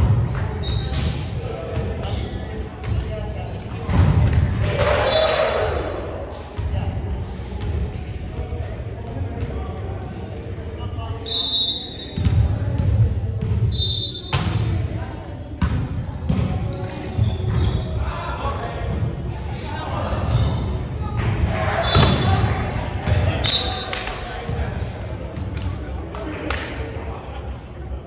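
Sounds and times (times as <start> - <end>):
volleyball hits and bounces: 3.8 - 5.2, 21.2 - 24.7
high squeaks: 16.0 - 24.0, 24.9 - 25.8.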